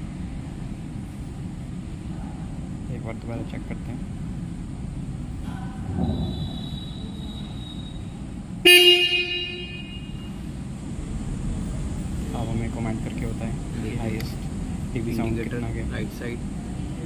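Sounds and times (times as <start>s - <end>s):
low background hum: 0.0s - 17.0s
motorcycle horn blast: 8.6s - 10.4s.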